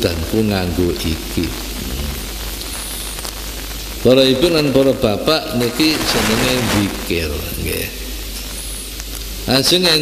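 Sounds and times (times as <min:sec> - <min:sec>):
low electrical hum: 0:00.0 - 0:10.0
recording hiss: 0:00.0 - 0:10.0.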